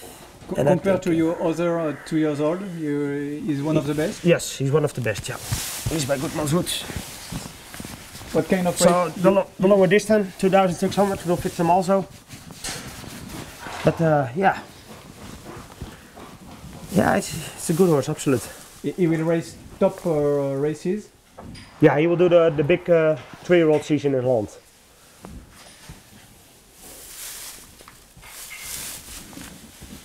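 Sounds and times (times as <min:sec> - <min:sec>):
horse moving in stable: 0:05.4 - 0:20.6, 0:25.2 - 0:30.0.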